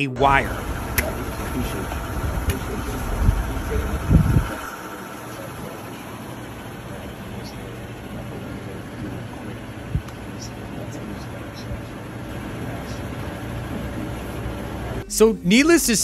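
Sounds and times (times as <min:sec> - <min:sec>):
faint indistinct voices: 0:00.0 - 0:01.9, 0:02.5 - 0:15.0
low gusty rumble: 0:00.2 - 0:12.7.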